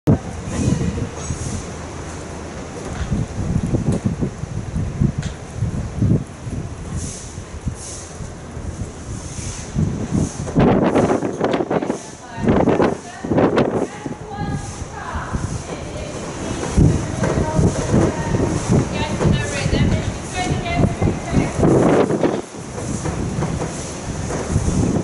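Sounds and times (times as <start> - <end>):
wind noise on microphone: 0.0 - 25.0.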